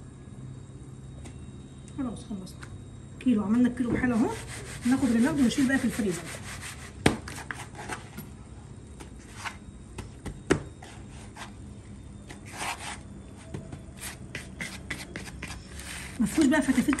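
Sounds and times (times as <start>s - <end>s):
crumbs scraping and rubbing: 14.0s - 17.0s.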